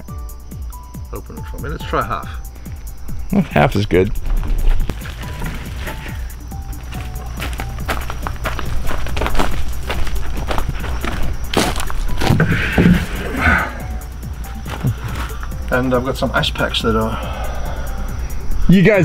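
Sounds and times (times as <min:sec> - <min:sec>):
background music with steady beat: 0:00.0 - 0:19.0
knocks and handling noise: 0:14.5 - 0:15.5.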